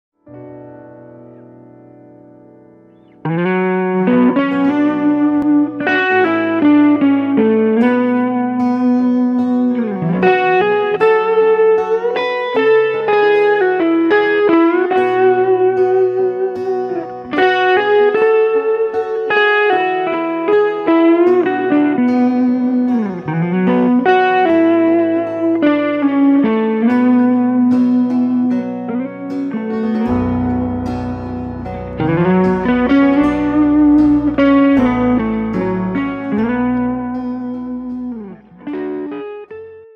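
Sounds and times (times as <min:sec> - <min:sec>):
electric guitar melody with bends: 0:00.2 - 0:39.9.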